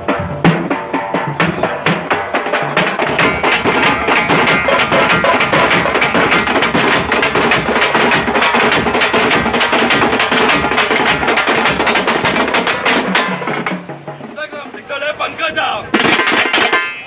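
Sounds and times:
frame drums and stick drums playing: 0.0s - 17.0s.

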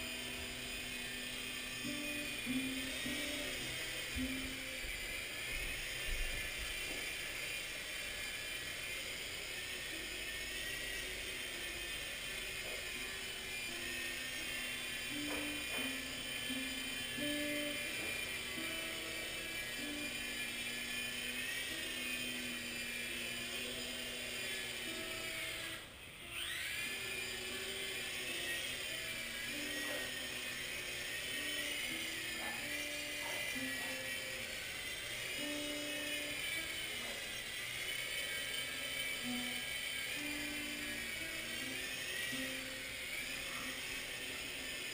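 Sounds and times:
tune playing: 0.0s - 6.7s, 9.9s - 24.1s
toy helicopter rotors whining: 0.0s - 44.9s.

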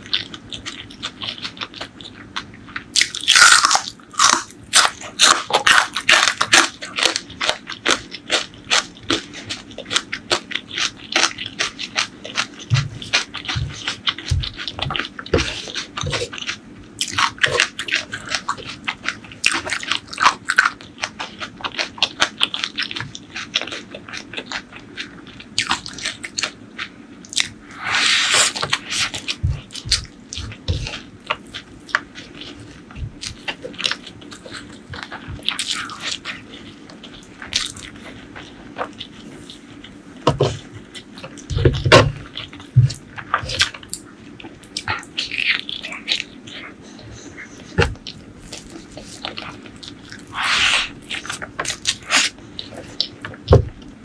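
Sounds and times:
crunchy chewing: 0.0s - 54.0s.

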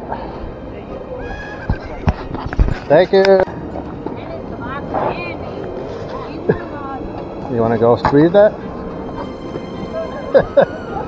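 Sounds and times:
footsteps on sidewalk: 0.0s - 11.0s
faint high-pitched call: 1.2s - 1.8s.

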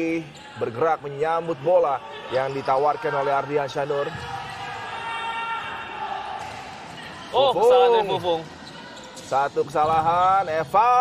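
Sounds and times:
sports hall court noise: 0.0s - 11.0s.

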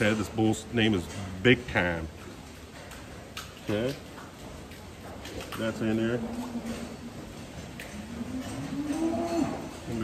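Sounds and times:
cow mooing: 8.0s - 9.9s.

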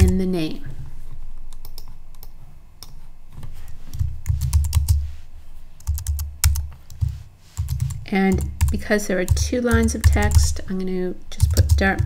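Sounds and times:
computer keyboard typing: 1.6s - 3.0s, 3.9s - 5.0s, 5.8s - 10.6s, 11.4s - 12.0s.

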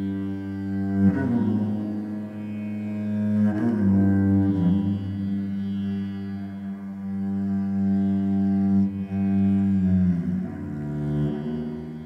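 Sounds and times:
cello drone notes: 0.0s - 12.0s.

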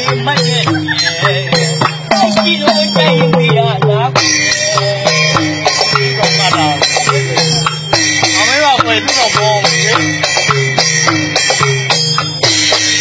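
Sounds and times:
jingling shimmer: 0.0s - 3.6s, 4.2s - 13.0s
hand drums with sliding pitch: 0.0s - 13.0s.

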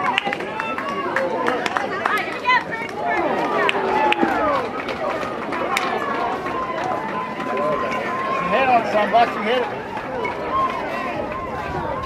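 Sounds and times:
spectators chattering and calling out: 0.0s - 12.0s.

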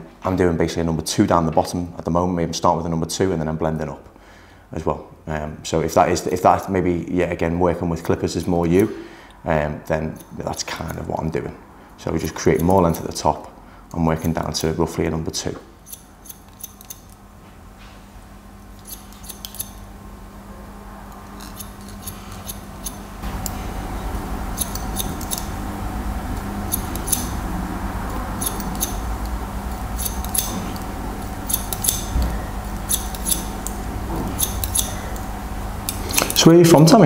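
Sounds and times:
steady low hum: 0.0s - 37.0s
scissors snipping hair: 15.9s - 17.1s, 18.8s - 19.8s, 21.2s - 23.6s, 24.6s - 25.6s, 26.7s - 27.4s, 28.1s - 33.8s, 34.4s - 36.4s.

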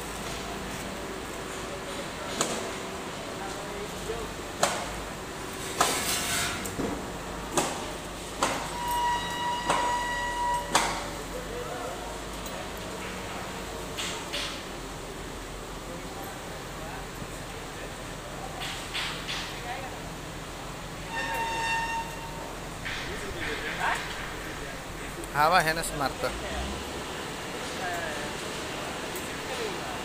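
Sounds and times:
horn-like tone: 8.7s - 10.8s, 21.1s - 22.5s.

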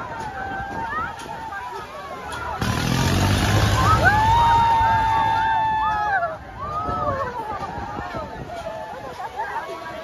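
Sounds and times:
people screaming: 0.0s - 10.0s
low rumble and rush: 2.5s - 9.2s.

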